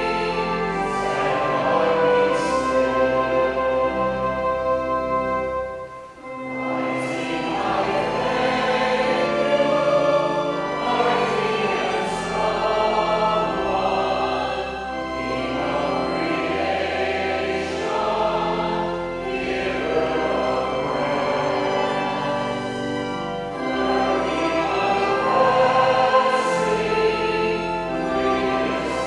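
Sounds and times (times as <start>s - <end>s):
choir singing slow hymn: 0.0s - 29.0s
sustained instrumental accompaniment: 0.0s - 29.0s.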